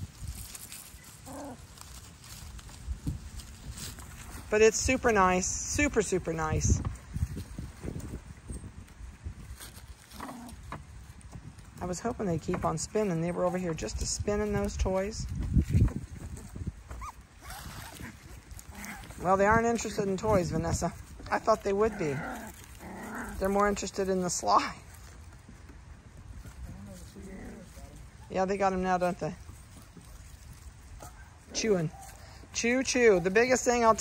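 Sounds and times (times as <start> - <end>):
faint low rumble: 0.0 - 32.4
puppies playing: 0.2 - 4.4, 16.2 - 28.4
puppy whimpering: 16.9 - 18.1.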